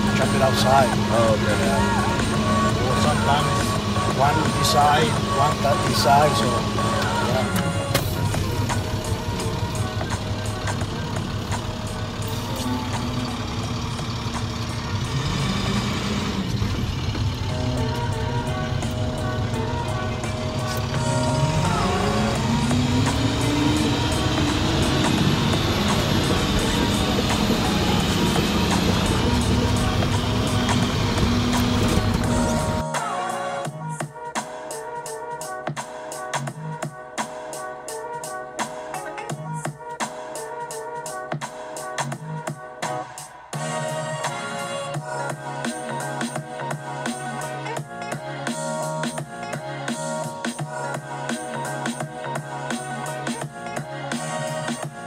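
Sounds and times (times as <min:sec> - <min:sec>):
truck engine and road rumble: 0:00.0 - 0:34.3
background music with steady beat: 0:00.0 - 0:55.0.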